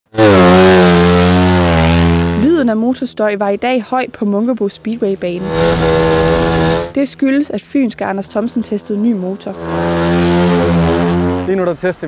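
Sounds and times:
motorcycle engine running loud: 0.1 - 2.6, 5.4 - 7.0.

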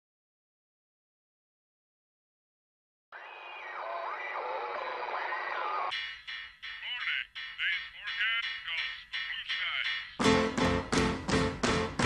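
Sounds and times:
radio static: 3.2 - 5.9, 6.8 - 9.8.

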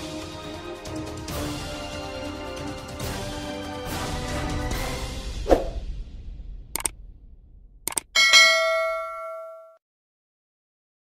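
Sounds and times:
mouse clicks: 7.9 - 8.1
bell chime: 8.2 - 9.8.

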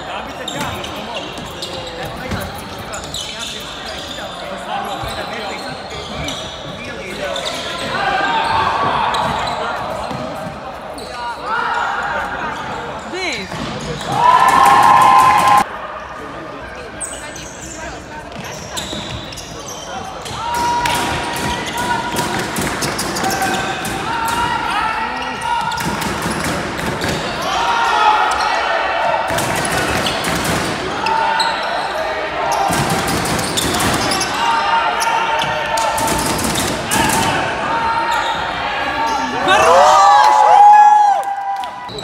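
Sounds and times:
sneakers squeaking: 0.1 - 14.3, 16.9 - 28.8, 29.5 - 39.7
players shouting: 14.0 - 15.7.

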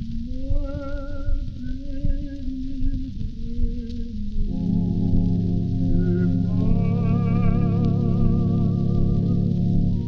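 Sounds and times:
old record of singing: 0.0 - 10.0.

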